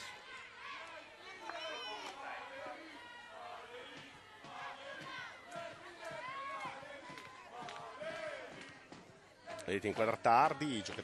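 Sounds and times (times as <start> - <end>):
people shouting and calling out: 0.0 - 11.0.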